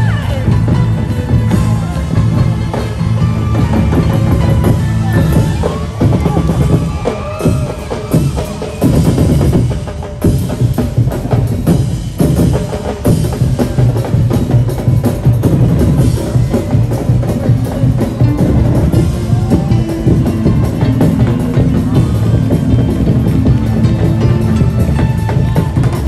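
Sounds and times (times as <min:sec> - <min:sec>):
drum-driven dance music: 0:00.0 - 0:26.0.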